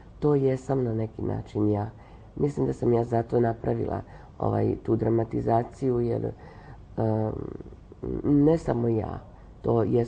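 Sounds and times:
woman speaking in a low voice: 0.0s - 10.0s.

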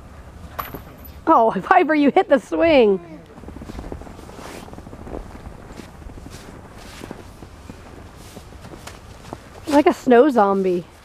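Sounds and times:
footsteps crunching in snow: 3.3s - 11.0s.

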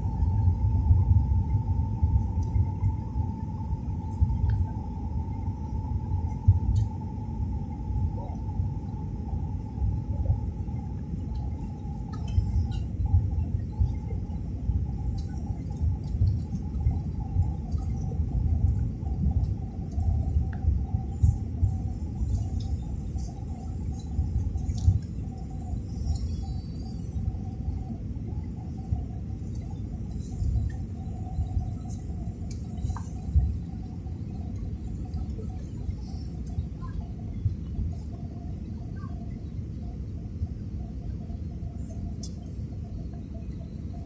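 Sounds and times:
jet engine cabin rumble: 0.0s - 44.0s
steady mid-pitched drone: 0.0s - 44.0s
steady thin whine: 0.0s - 44.0s.

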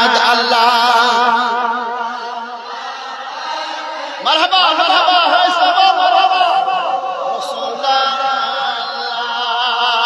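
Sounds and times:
man chanting over loudspeaker: 0.0s - 10.0s.

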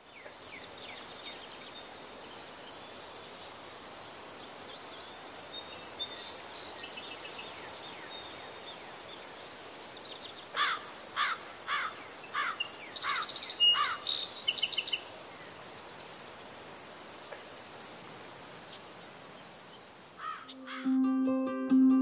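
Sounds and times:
high insect drone: 0.1s - 20.9s.

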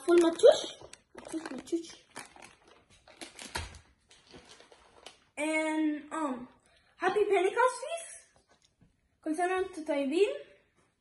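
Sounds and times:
plastic bag crinkling: 0.0s - 5.4s.

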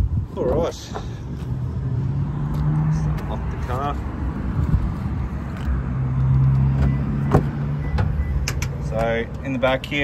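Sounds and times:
car door opening: 6.7s - 8.8s.

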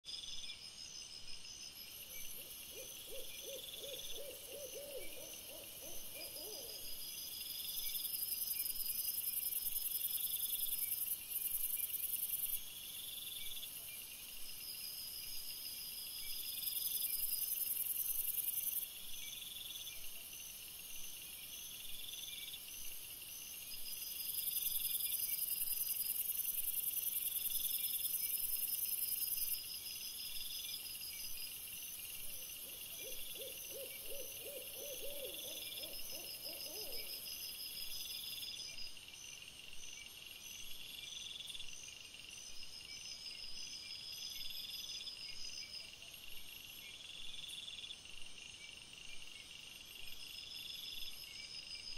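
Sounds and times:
night insects chirping: 0.1s - 51.9s
owl hooting: 2.7s - 6.9s, 32.6s - 37.3s.

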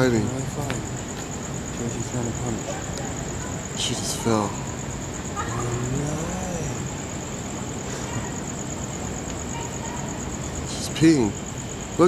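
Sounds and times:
cricket trill: 0.0s - 12.0s
street traffic: 0.0s - 12.0s
faint distant voice: 5.3s - 6.9s.

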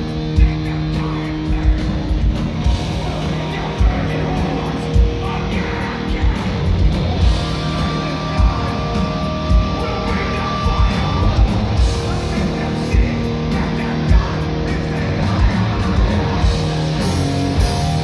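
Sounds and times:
distorted electric guitar: 0.0s - 18.0s
live heavy metal band: 0.0s - 18.0s.

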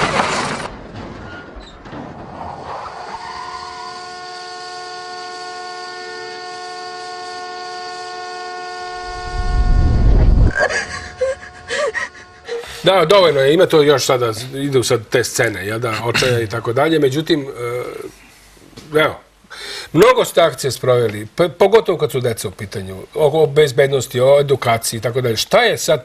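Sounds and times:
car crash impact: 0.0s - 3.4s
car horn blaring: 3.7s - 13.0s
loud low rumble: 8.9s - 13.1s.

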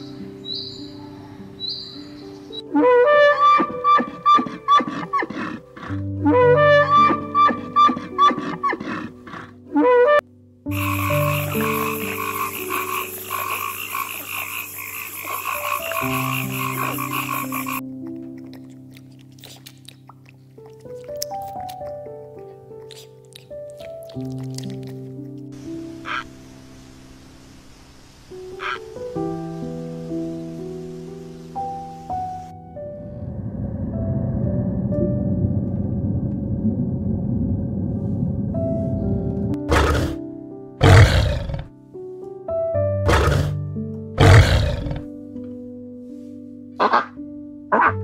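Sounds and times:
soft piano music: 0.0s - 48.0s
frog croaking: 10.7s - 17.8s, 25.8s - 26.5s, 28.5s - 29.0s, 39.7s - 40.2s, 40.8s - 41.7s, 44.2s - 45.1s, 46.8s - 48.0s.

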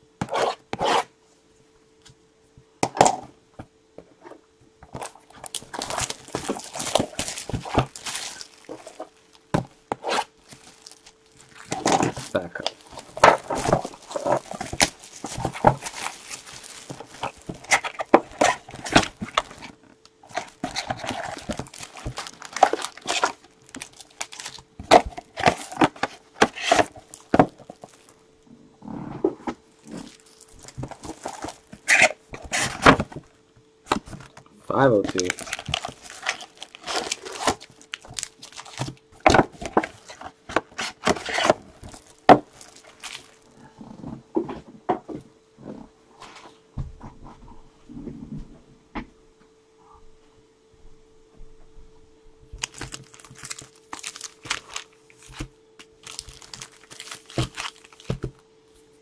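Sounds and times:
faint steady hum: 0.0s - 59.0s
cardboard rustling: 4.9s - 28.2s, 29.2s - 44.2s, 52.6s - 58.4s
shrink-wrap crinkling and tearing: 4.9s - 28.3s, 29.7s - 33.3s, 33.9s - 43.6s, 52.6s - 58.4s.

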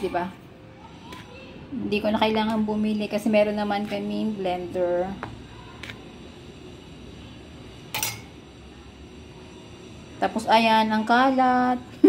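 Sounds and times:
metal spoon clinking: 7.9s - 8.4s.

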